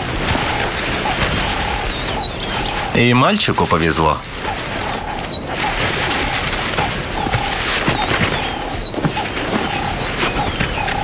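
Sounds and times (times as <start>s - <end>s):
whistled bird calls: 0.0s - 11.0s.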